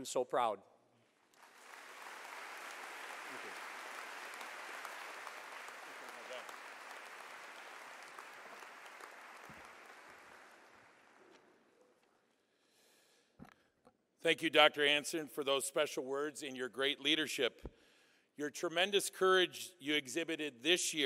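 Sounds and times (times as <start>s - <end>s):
audience applause: 1.3s - 11.4s.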